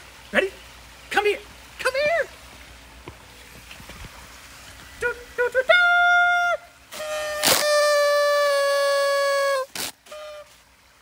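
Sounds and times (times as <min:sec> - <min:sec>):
sharp noisy burst: 0:06.9 - 0:10.2
party horn toots and notes: 0:06.9 - 0:10.6.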